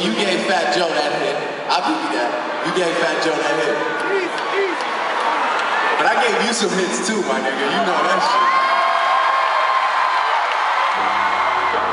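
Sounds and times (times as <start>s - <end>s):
concert crowd cheering: 0.0s - 11.9s.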